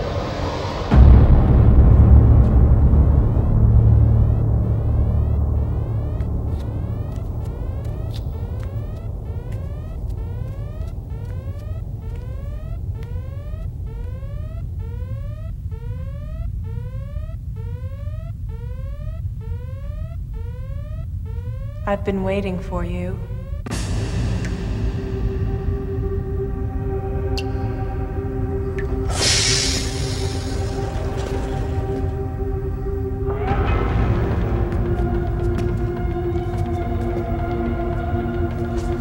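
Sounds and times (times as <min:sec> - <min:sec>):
rising synthesizer sweeps: 0:00.0 - 0:22.1, 0:23.2 - 0:39.0
deep rumble and low drone: 0:00.0 - 0:39.0.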